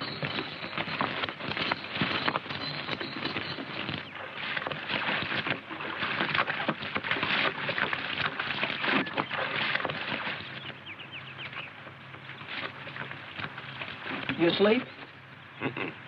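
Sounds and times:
hooves splashing in water: 0:00.0 - 0:16.0.

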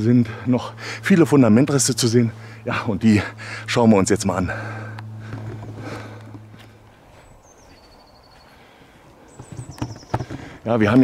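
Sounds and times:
low steady hum: 0:00.0 - 0:11.0
high whistled bird calls: 0:07.2 - 0:08.6, 0:09.3 - 0:10.2.

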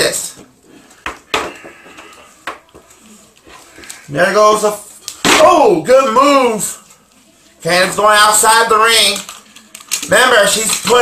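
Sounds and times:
plastic toy figures clacking: 0:08.9 - 0:11.0.

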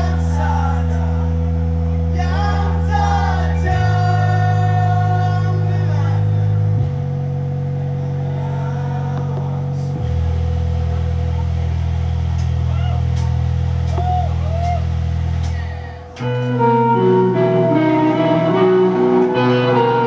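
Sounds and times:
sustained low chords: 0:00.0 - 0:20.0
live band playing: 0:15.4 - 0:20.0.

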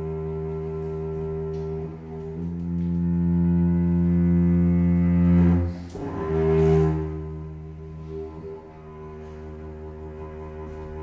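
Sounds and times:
low bowed string note: 0:00.0 - 0:11.0.

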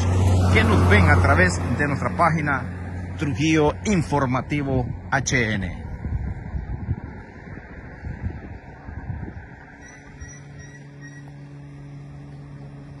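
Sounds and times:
low engine hum: 0:00.0 - 0:13.0
wind buffeting microphone: 0:01.6 - 0:13.0.

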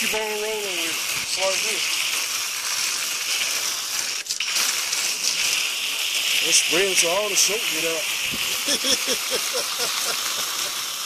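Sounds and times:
water spraying from hose gun: 0:00.0 - 0:11.0.

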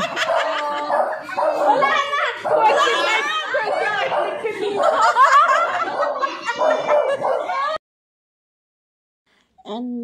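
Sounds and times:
women laughing: 0:00.0 - 0:07.8.

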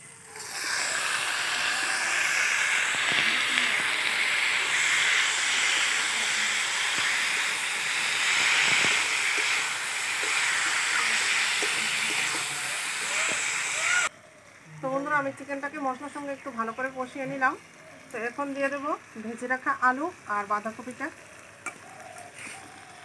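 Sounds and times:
chicken sizzling in hot oil: 0:00.0 - 0:23.0.

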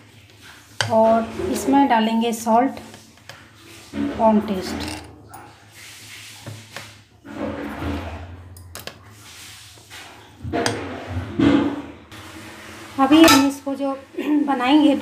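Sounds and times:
spatula stirring batter in steel bowl: 0:00.0 - 0:04.8, 0:05.7 - 0:08.2.

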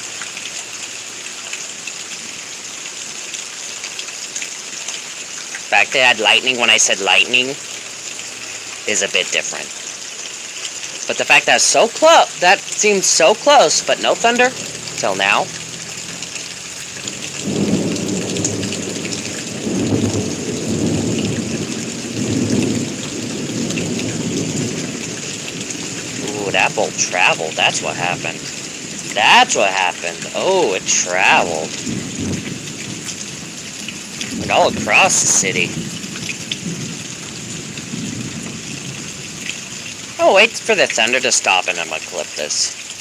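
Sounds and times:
steady rain: 0:00.0 - 0:43.0
thunder rumbling: 0:12.3 - 0:39.5.

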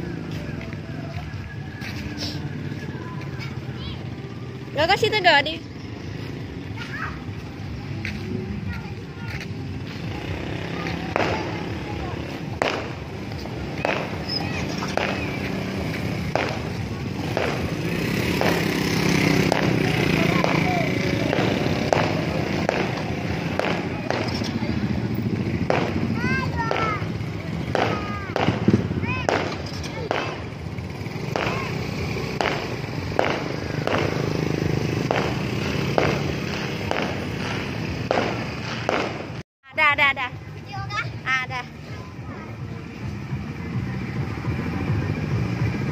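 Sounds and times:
motorcycles riding past: 0:00.0 - 0:45.9
people's voices: 0:00.0 - 0:45.9.

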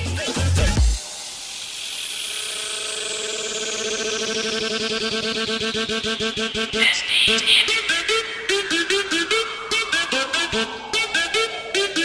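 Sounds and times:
fast-pulsing synth line: 0:01.0 - 0:12.0
falling noise sweep: 0:01.2 - 0:12.0.

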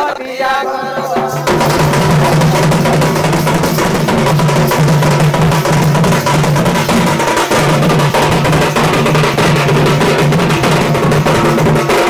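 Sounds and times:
steady ringing tone: 0:00.6 - 0:08.6
barrel drum and frame drums: 0:00.6 - 0:12.0.

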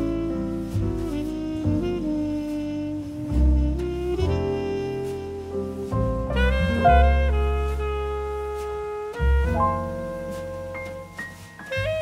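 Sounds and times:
acoustic bass: 0:00.0 - 0:12.0
jazz horns holding notes: 0:00.0 - 0:12.0.

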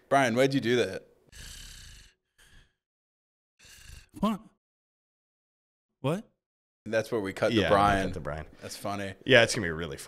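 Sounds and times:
short breath: 0:01.3 - 0:02.8.

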